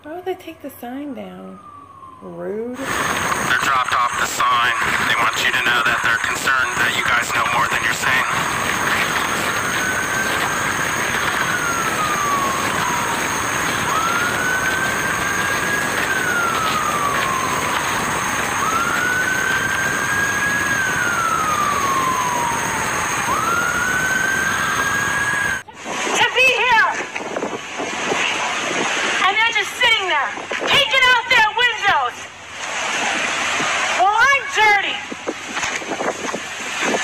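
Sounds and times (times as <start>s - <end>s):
emergency siren wailing: 1.0s - 29.5s.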